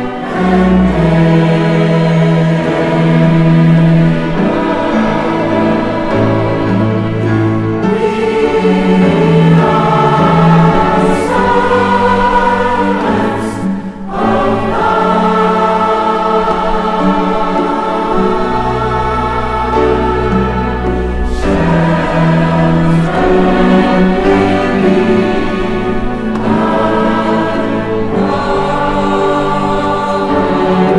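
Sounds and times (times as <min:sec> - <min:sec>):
chamber orchestra: 0:00.0 - 0:30.9
mixed choir singing: 0:00.0 - 0:30.9.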